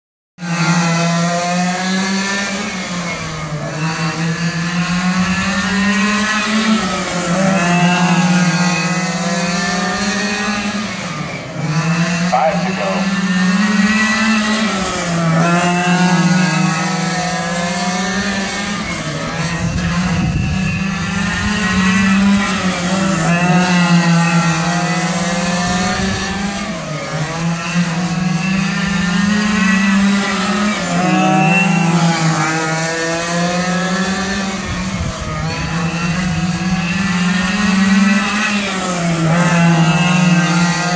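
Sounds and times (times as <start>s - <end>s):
radio-controlled car engines: 0.4s - 40.9s.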